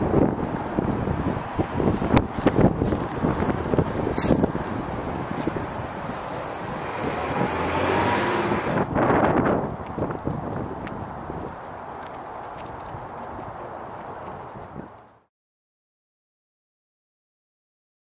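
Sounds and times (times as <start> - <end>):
wind buffeting microphone: 0.0 - 15.2
traffic noise: 0.0 - 15.3.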